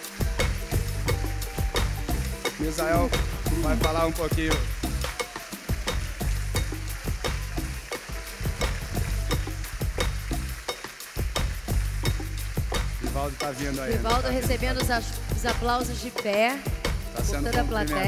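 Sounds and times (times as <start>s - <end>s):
audience applauding: 0.0s - 16.1s
background music: 0.0s - 18.0s.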